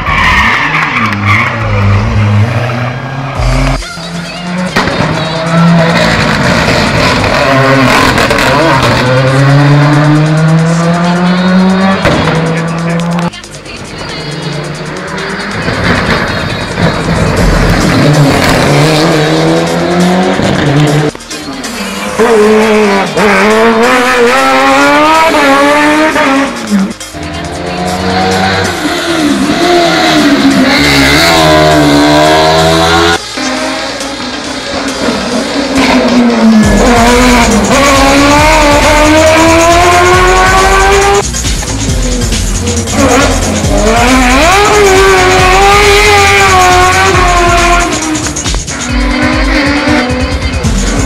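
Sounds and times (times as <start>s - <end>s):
racing car engines revving: 0.0s - 51.0s.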